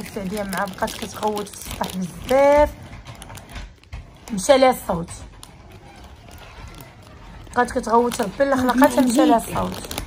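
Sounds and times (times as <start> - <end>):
woman speaking: 0.0 - 2.8, 4.3 - 5.3, 7.5 - 10.0.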